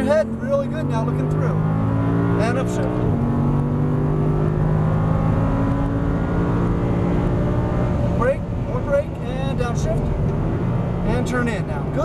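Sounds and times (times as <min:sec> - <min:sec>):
person speaking: 0:00.0 - 0:01.1
car engine at full throttle: 0:00.0 - 0:12.0.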